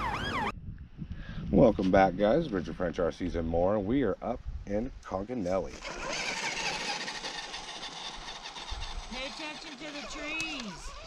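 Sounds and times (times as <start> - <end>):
toy truck motor running: 5.7 - 11.0.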